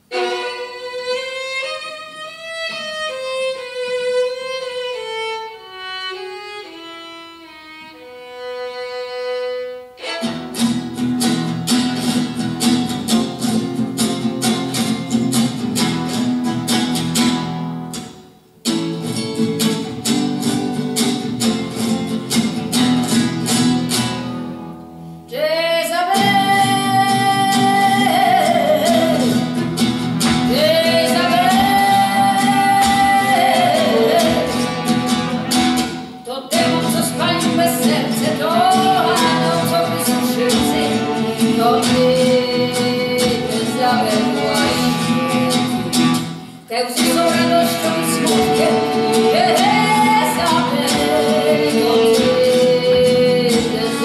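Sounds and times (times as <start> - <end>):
violin solo: 0.0 - 11.9, 26.1 - 46.2, 47.0 - 54.0
acoustic guitar strumming: 0.0 - 54.0
person singing wavering: 26.1 - 29.6, 30.5 - 46.2, 46.8 - 54.0.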